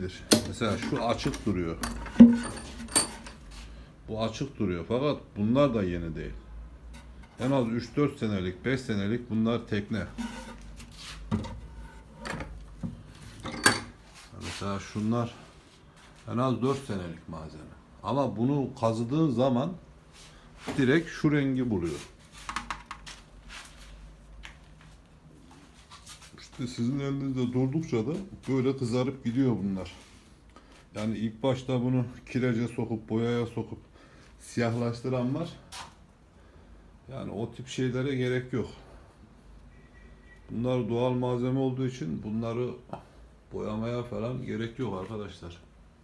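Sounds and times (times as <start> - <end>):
handling clicks and rustles: 0.3 - 3.5.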